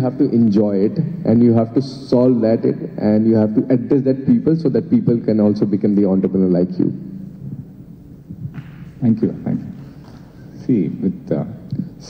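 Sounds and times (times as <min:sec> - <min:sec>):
pa system hum: 0:00.0 - 0:12.0
microphone handling thuds: 0:08.3 - 0:09.2.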